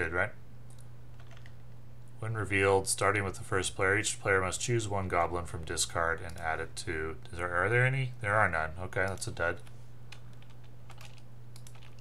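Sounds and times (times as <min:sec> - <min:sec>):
steady low hum: 0:00.0 - 0:12.0
keyboard and mouse clicks: 0:00.7 - 0:01.6, 0:09.0 - 0:12.0.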